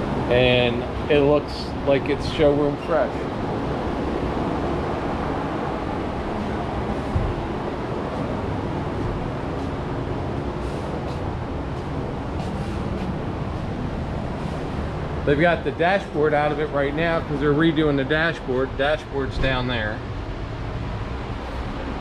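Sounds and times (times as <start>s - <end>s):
steady low background noise: 0.0s - 22.0s.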